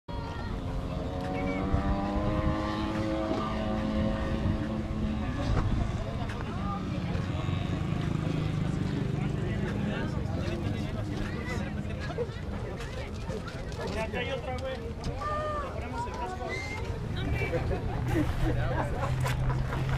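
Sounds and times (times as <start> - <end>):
people talking: 0.1 - 19.9
motorcycle engine running: 0.6 - 11.9.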